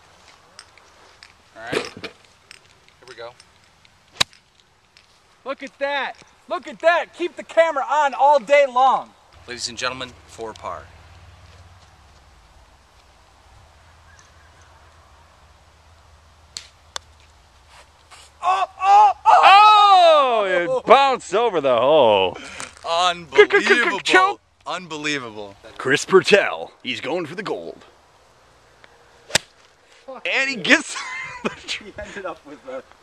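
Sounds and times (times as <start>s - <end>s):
golf club striking ball: 29.3s - 29.6s.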